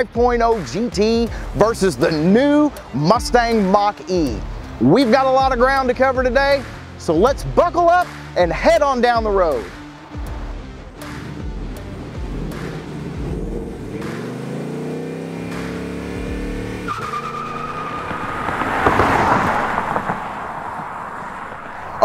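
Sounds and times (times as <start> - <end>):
background music: 0.0 - 20.0
car engine revving: 9.6 - 22.0
tyres squealing: 16.6 - 22.0.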